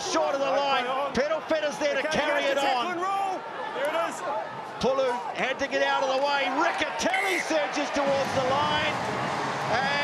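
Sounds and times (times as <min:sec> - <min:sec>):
man commentating: 0:04.8 - 0:09.0.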